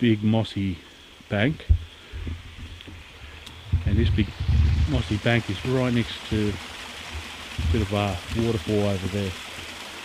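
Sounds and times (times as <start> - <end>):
running water: 0.0 - 10.0
low microphone rumble: 1.7 - 5.6.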